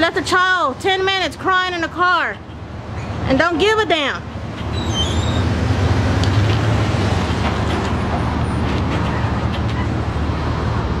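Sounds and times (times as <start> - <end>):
parking lot traffic: 0.0 - 11.0.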